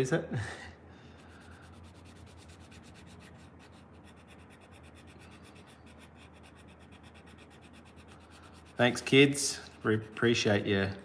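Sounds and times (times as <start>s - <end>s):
pencil shading on paper: 1.2s - 10.8s.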